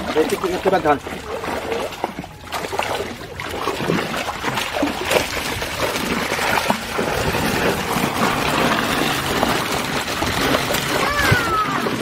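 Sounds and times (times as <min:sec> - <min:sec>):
water rushing and splashing: 0:00.0 - 0:12.0.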